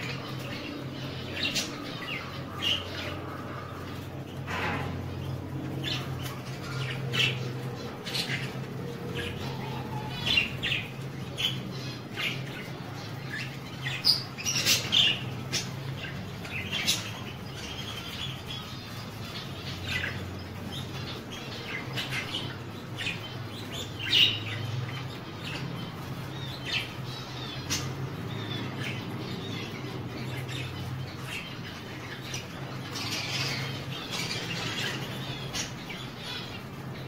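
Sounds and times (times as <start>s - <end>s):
budgerigars chirping and squawking: 0.0s - 37.0s.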